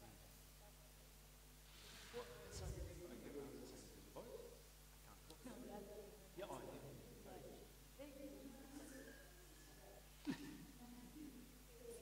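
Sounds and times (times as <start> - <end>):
soft conversational speech: 0.0 - 12.0.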